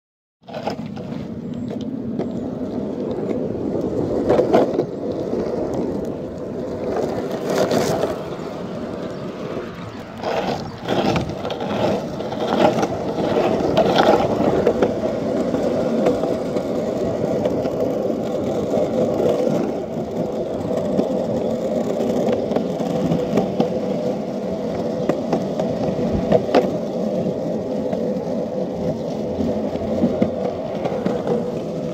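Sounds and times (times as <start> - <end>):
skateboard wheels rolling on pavement: 0.4 - 31.9.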